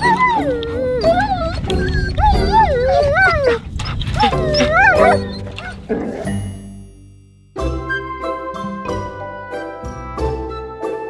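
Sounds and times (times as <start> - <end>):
dog howling: 0.0 - 6.3
background music: 0.0 - 11.0.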